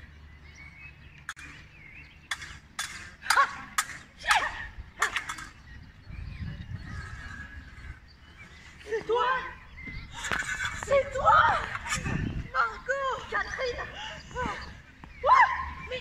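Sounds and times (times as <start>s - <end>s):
swords clashing: 2.3s - 5.6s.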